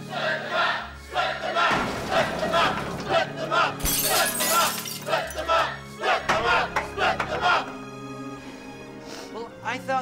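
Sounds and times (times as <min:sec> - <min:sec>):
crowd chanting in unison: 0:00.0 - 0:08.1.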